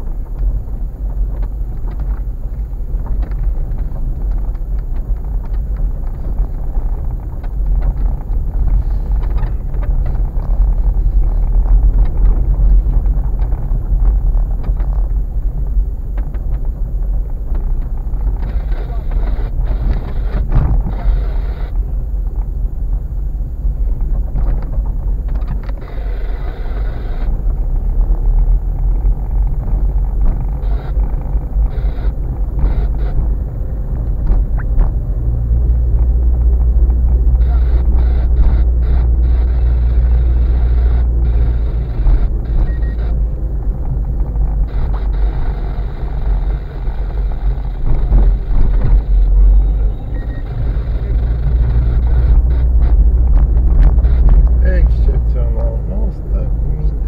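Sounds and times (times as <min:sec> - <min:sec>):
road and engine rumble: 0:00.0 - 0:57.0.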